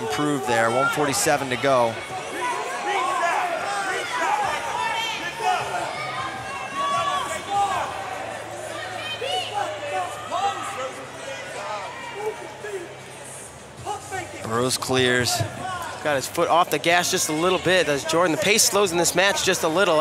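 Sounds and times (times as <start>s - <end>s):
crowd calling out and chattering: 0.0s - 20.0s.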